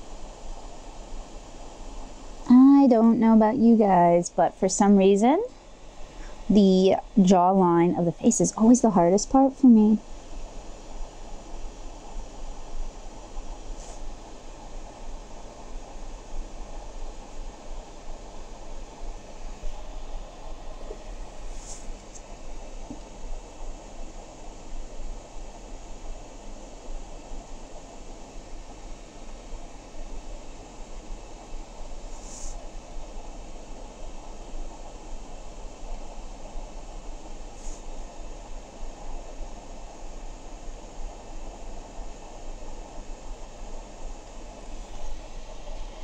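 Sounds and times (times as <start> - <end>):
hiss: 5.5 - 6.5, 10.0 - 46.0.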